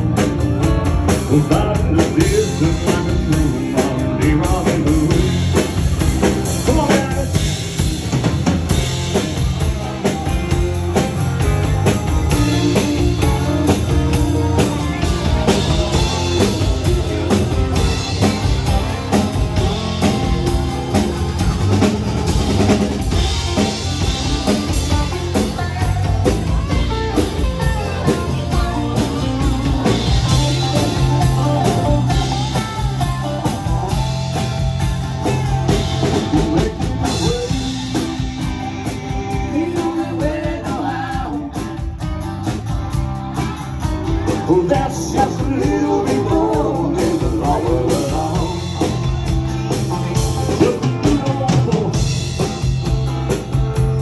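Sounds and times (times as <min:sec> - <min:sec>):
drum kit steady beat: 0:00.0 - 0:54.0
electric guitar: 0:00.0 - 0:54.0.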